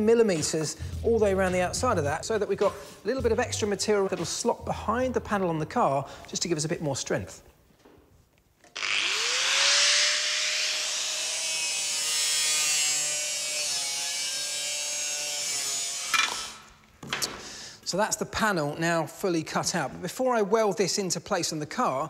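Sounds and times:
angle grinder cutting metal: 0:08.7 - 0:16.7.

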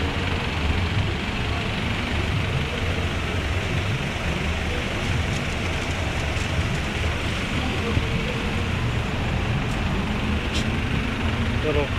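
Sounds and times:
vehicle engine rumbling: 0:00.0 - 0:11.9.

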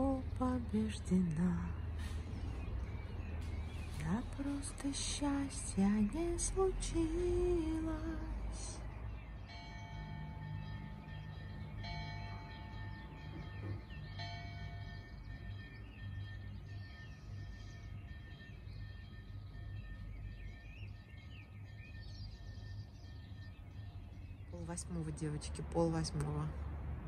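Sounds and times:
soft background music: 0:00.0 - 0:27.0
faint bird chirps: 0:06.4 - 0:26.4.

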